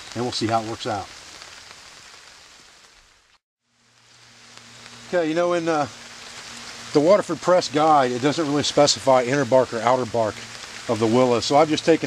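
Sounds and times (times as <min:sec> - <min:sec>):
campfire hissing and crackling: 0:00.0 - 0:12.0.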